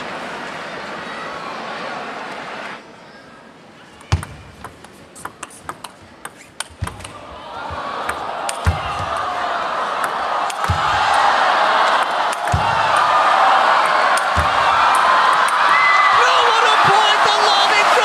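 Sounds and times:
arena crowd noise: 0.0 - 18.0
table tennis ball clicking: 4.0 - 7.2.

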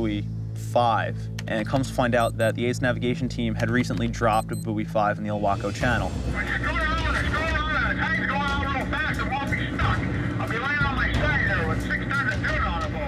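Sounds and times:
person talking: 2.0 - 2.7.

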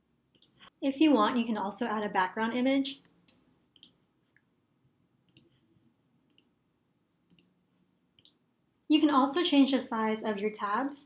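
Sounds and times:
computer mouse clicks: 0.3 - 0.6, 3.0 - 4.0, 5.3 - 5.6, 6.3 - 6.6, 7.2 - 7.6, 8.2 - 8.4.

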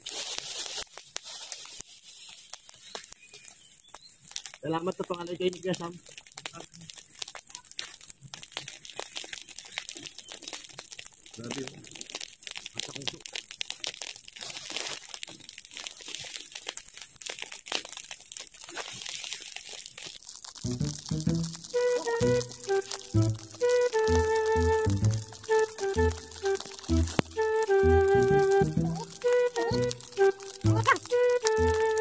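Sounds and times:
burning grass crackling and popping: 0.0 - 32.0
music with a beat: 20.7 - 32.0.

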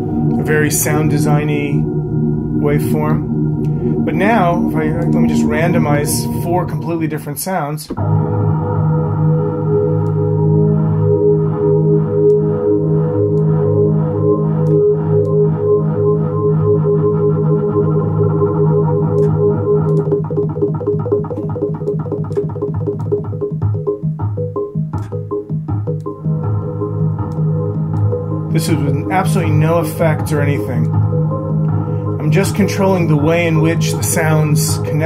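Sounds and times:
synthesizer pulsing tones: 0.0 - 35.0.

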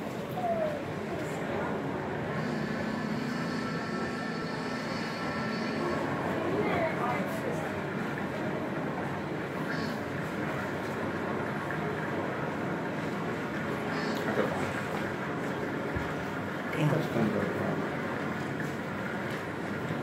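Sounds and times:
rushing rumbling background noise: 0.0 - 16.8
indistinct voices murmuring: 0.2 - 7.9.

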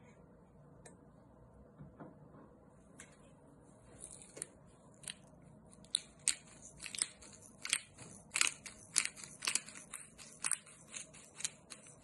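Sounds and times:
pepper mill grinding: 5.0 - 12.0.

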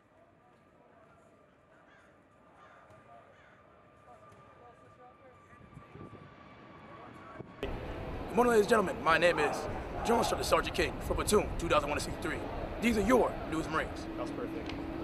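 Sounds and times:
distant voices: 0.2 - 15.0.

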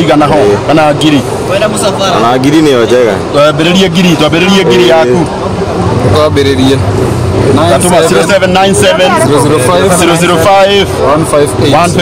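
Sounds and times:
men talking: 0.0 - 12.0.

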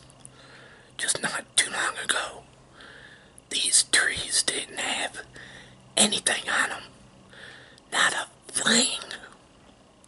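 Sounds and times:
man whispering: 1.0 - 2.5, 3.5 - 5.4, 6.0 - 7.0, 7.9 - 9.4.

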